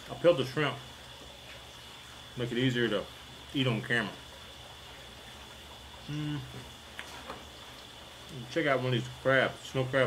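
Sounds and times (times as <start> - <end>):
background hiss: 0.0 - 10.0
faint high whine: 0.0 - 10.0.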